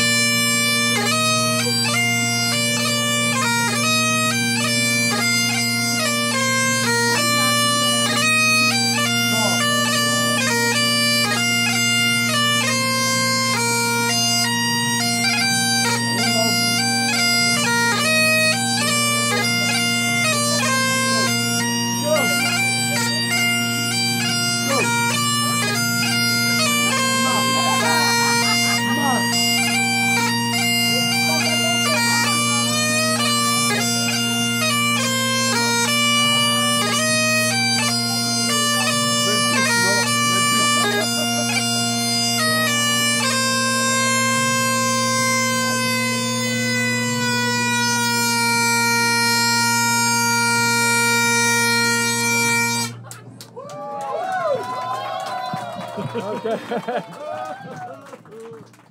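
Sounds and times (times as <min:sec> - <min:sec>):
bagpipes playing: 0:00.0 - 0:53.6, 0:56.0 - 0:57.4.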